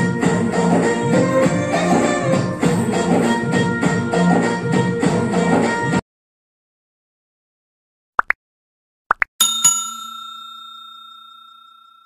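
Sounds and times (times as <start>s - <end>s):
bell chime ringing: 9.4s - 12.0s.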